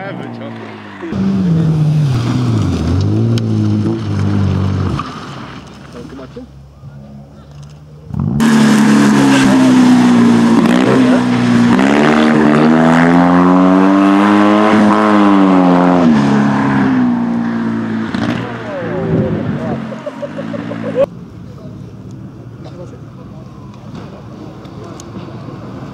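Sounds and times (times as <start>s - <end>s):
rally car engine revving: 0.0s - 5.7s, 8.0s - 21.1s.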